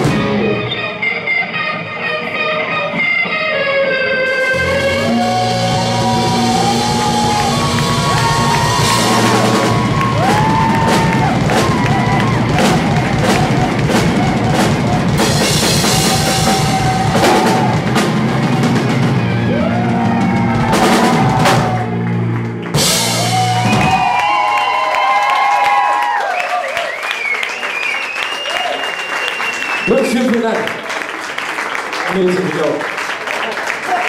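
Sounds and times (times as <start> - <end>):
live rock band playing: 0.0 - 24.8.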